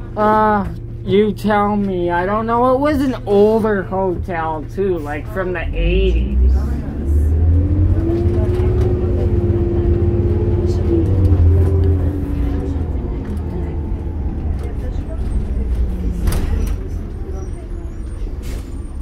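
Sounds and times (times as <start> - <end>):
bus engine hum and whine: 0.0 - 19.0.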